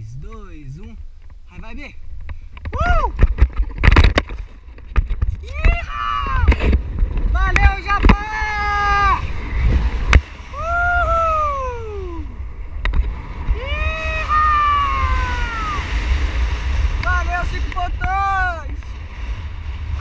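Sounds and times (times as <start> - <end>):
wind rumble on microphone: 0.0 - 20.0
person yelling excitedly: 5.4 - 6.6, 7.4 - 9.2, 13.6 - 15.9, 18.0 - 18.7.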